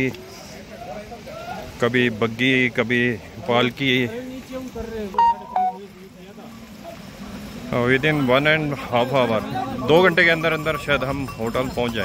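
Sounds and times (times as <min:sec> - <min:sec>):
faint background murmur: 0:00.0 - 0:12.0
short sharp tones: 0:05.2 - 0:05.8.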